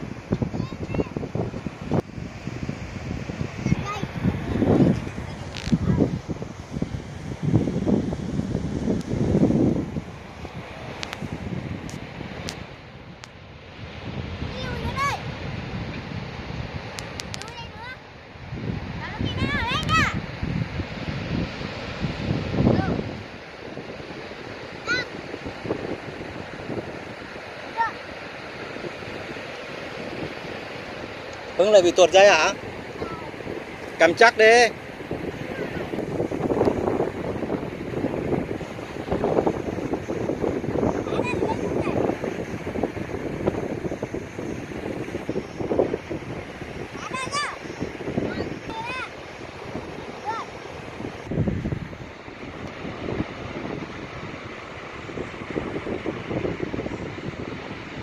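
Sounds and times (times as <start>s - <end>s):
surf on the beach: 0.0s - 58.0s
wind buffeting microphone: 0.0s - 58.0s.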